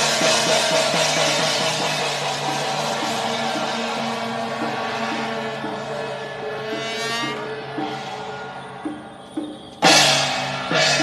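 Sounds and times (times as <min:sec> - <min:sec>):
hand cymbals and gongs crashing: 0:00.0 - 0:11.0
light percussion hits: 0:00.0 - 0:11.0.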